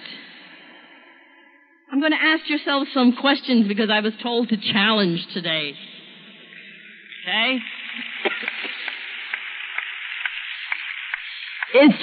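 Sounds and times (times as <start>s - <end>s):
recording hiss: 1.9s - 12.0s.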